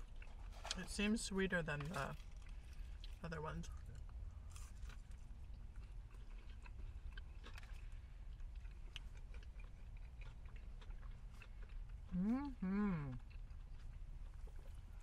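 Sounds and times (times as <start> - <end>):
low steady rumble: 0.0 - 15.0
people chewing crunchy food: 0.0 - 15.0.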